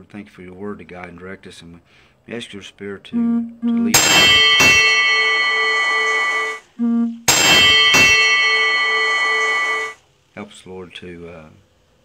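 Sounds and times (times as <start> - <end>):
low pulsing note: 3.2 - 10.0
bell-like ringing tones: 3.8 - 10.0.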